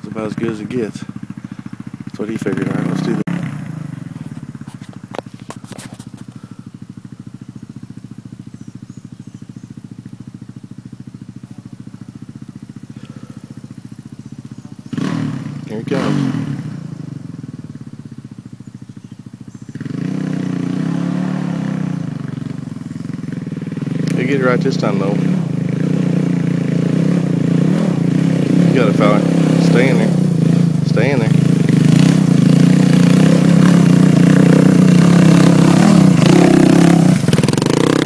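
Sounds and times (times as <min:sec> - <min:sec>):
dirt bike engine idling: 0:00.0 - 0:38.0.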